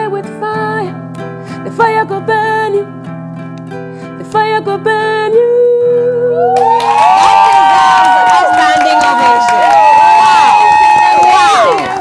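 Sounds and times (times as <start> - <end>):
women whooping and cheering: 6.4 - 12.0.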